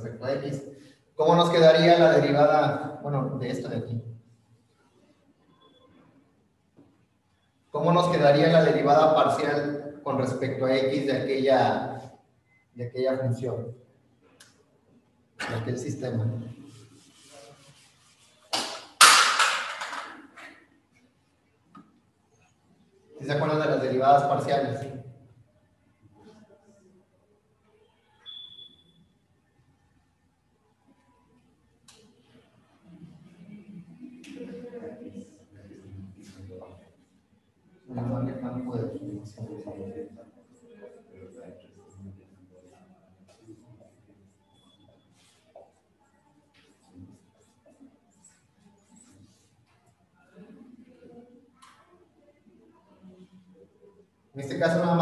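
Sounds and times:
marker scraping on whiteboard: 0:16.6 - 0:18.7
marker squeaking on whiteboard: 0:28.0 - 0:29.1, 0:42.7 - 0:45.8.

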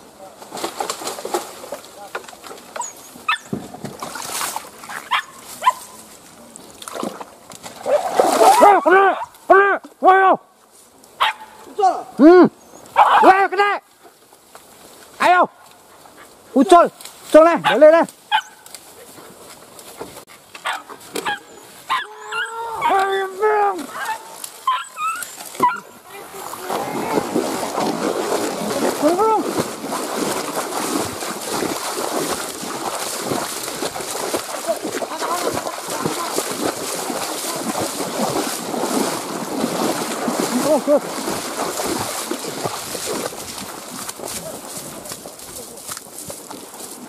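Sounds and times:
dogs yelping: 0:02.8 - 0:03.5, 0:04.9 - 0:05.8, 0:12.8 - 0:13.3, 0:17.6 - 0:18.6, 0:20.6 - 0:23.0, 0:23.9 - 0:26.0
dogs barking: 0:04.9 - 0:05.9, 0:11.2 - 0:11.6, 0:12.9 - 0:13.3, 0:17.6 - 0:18.6, 0:20.6 - 0:23.0, 0:23.9 - 0:26.0.

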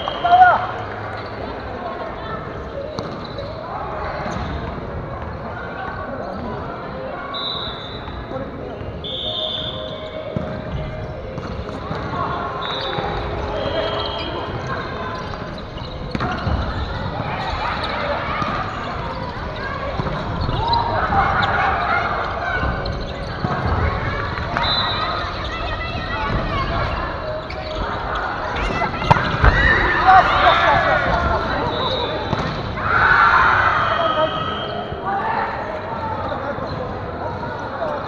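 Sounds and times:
sneakers squeaking on boards: 0:00.0 - 0:05.5, 0:07.4 - 0:35.0, 0:35.6 - 0:38.0
players' voices and calls: 0:00.0 - 0:38.0.

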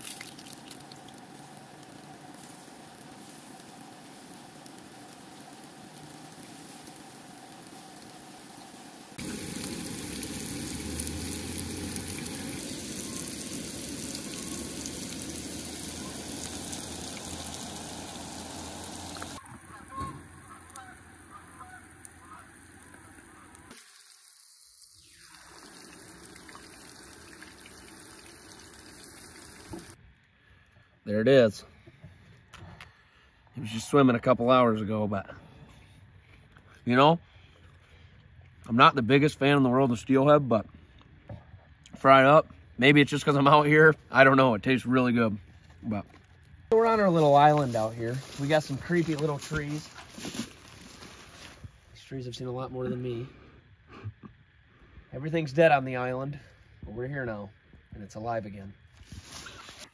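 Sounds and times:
fish frying in oil: 0:00.0 - 0:19.4, 0:20.8 - 0:30.0.

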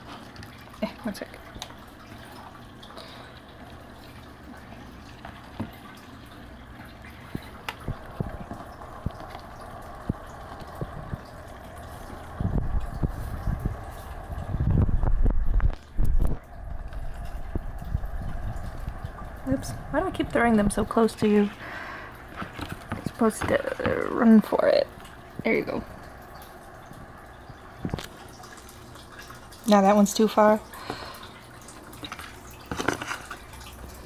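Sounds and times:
steady background hum: 0:00.0 - 0:34.0.

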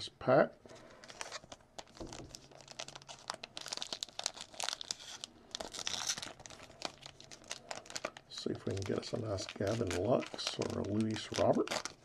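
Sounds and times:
plastic wrapper crinkling and tearing: 0:00.9 - 0:12.0.

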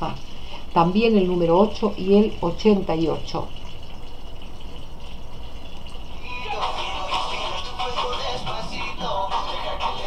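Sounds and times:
low steady hum: 0:00.0 - 0:10.0
background music with voices: 0:06.2 - 0:10.0.

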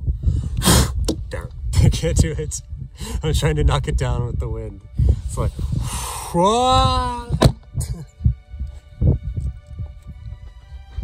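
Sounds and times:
wind buffeting microphone: 0:00.0 - 0:11.0
sharp knock: 0:07.3 - 0:07.6.

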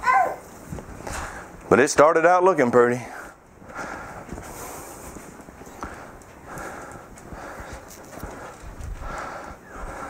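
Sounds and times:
footsteps walking: 0:00.4 - 0:01.7, 0:03.2 - 0:10.0.

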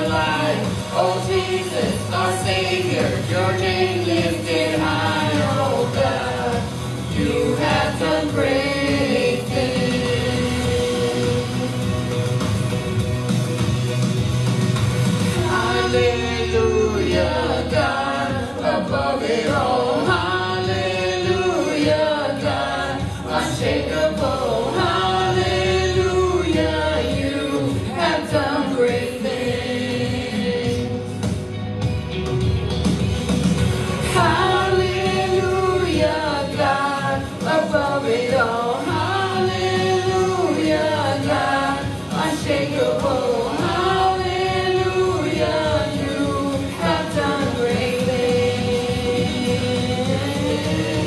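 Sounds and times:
group singing slow praise song: 0:00.0 - 0:12.0, 0:15.3 - 0:31.4, 0:33.9 - 0:51.0.

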